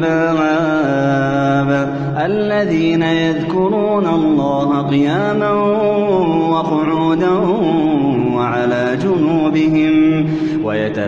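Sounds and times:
man chanting recitation: 0.0s - 11.0s.

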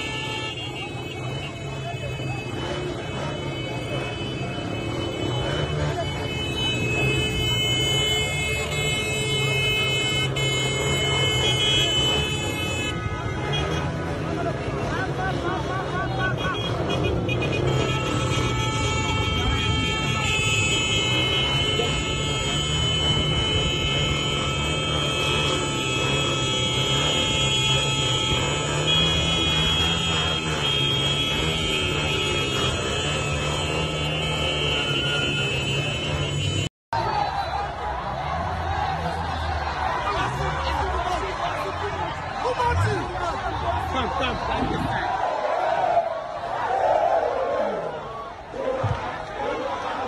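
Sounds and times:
crowd voices: 0.0s - 50.0s
vehicle engines running: 0.0s - 50.0s.

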